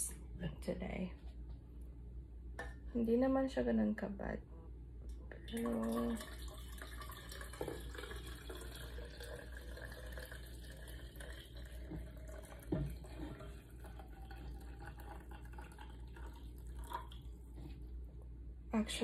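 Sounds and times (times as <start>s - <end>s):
water pouring into metal bottle: 5.5s - 17.7s.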